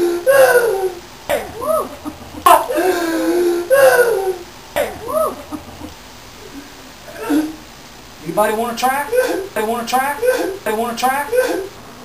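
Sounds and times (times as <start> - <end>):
person wailing: 0.0 - 5.9, 8.8 - 11.7.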